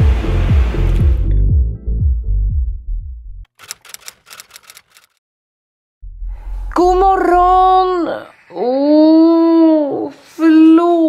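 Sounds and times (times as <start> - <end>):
background music: 0.0 - 2.8
typewriter key clacks: 3.6 - 5.2.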